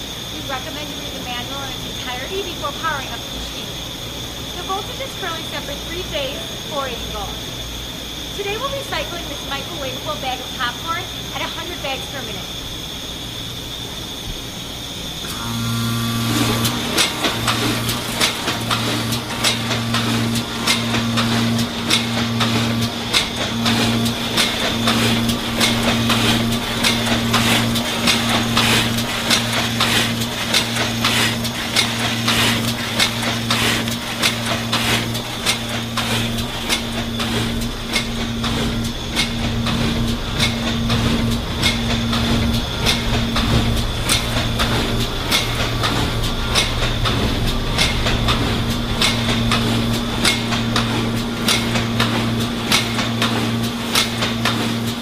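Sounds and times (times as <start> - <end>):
electric hum: 0.0 - 55.0
machine conveyor clicking and clacking: 15.2 - 55.0.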